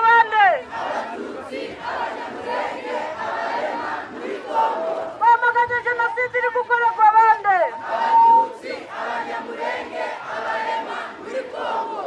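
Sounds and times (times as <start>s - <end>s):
person calling through a megaphone: 0.0s - 0.8s, 4.6s - 8.5s.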